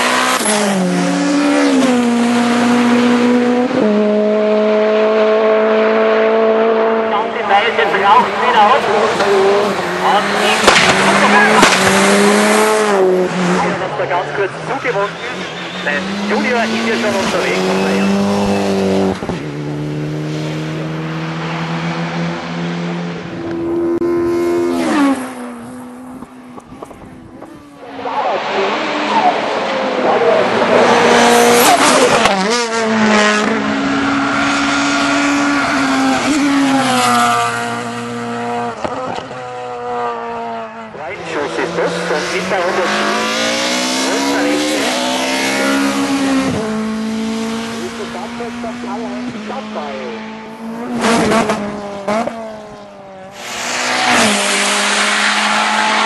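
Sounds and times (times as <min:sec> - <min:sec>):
race car engines at full throttle: 0:00.0 - 0:56.0.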